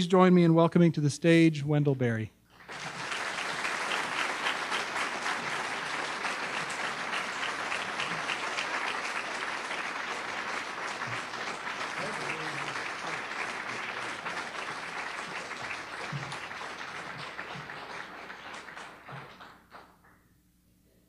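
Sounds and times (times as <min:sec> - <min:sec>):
audience applauding: 0:02.5 - 0:20.1.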